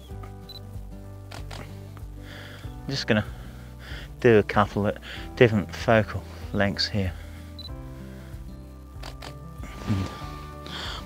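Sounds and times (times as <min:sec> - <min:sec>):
soft background music: 0:00.0 - 0:11.0
camera shutter clicks: 0:01.3 - 0:01.7, 0:09.0 - 0:09.4.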